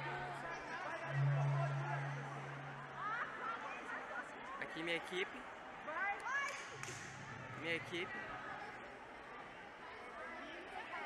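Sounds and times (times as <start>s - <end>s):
students calling out and talking: 0.0s - 4.5s.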